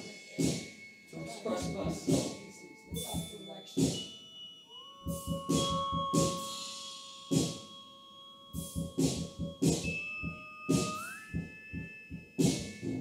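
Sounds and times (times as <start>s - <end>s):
sharp percussion hits: 0.0s - 4.4s, 5.0s - 13.0s
held steady tones: 0.0s - 13.0s.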